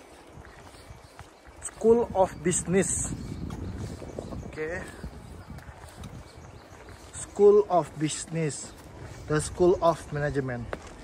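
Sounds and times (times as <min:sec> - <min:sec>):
footsteps on paving: 0:00.0 - 0:11.0
outdoor background noise: 0:00.0 - 0:11.0.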